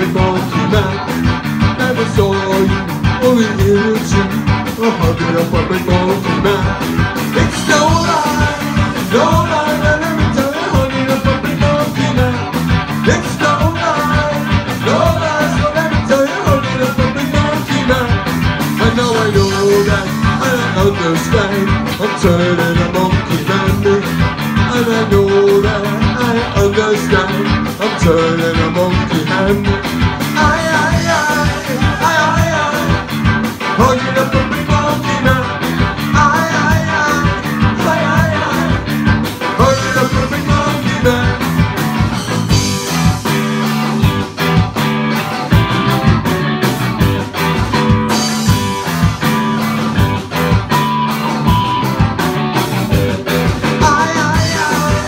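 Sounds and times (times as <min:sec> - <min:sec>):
bass guitar: 0:00.0 - 0:55.0
drum kit: 0:00.0 - 0:55.0
electric guitar: 0:00.0 - 0:55.0
live ska band playing: 0:00.0 - 0:55.0.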